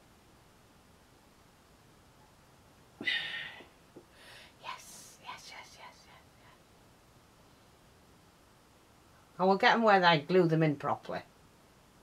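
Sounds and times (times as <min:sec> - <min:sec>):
woman whispering: 0:04.5 - 0:06.6.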